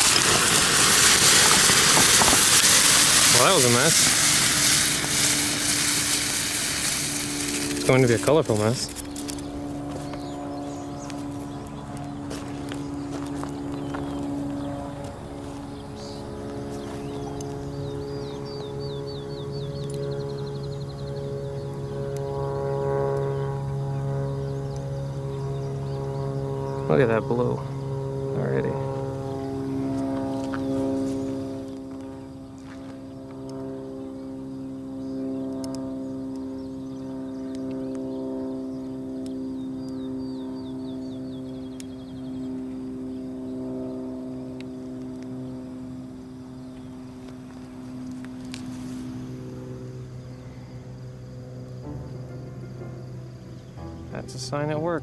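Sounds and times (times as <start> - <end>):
distant propeller airplane droning: 0.0 - 55.0
bird chirps: 15.6 - 22.0, 34.5 - 42.9.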